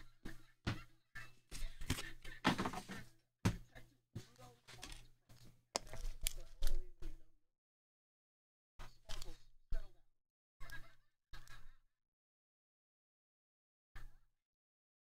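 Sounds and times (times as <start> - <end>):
trading cards handled on table: 4.3 - 6.8.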